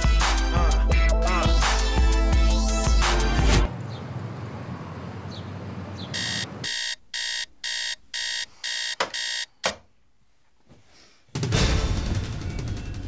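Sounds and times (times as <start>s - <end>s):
digital alarm clock beeping: 6.1s - 9.5s.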